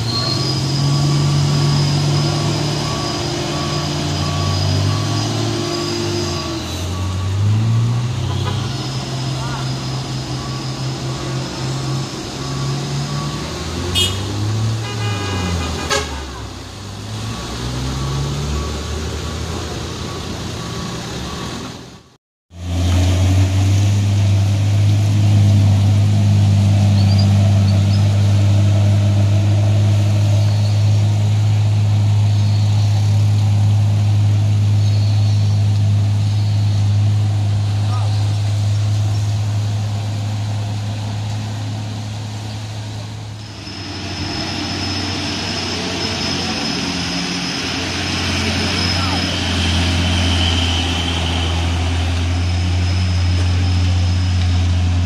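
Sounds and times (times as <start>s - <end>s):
engine drone close by: 0.0s - 55.0s
truck engines revving: 0.0s - 55.0s
horn toot: 8.2s - 9.9s, 13.9s - 16.5s.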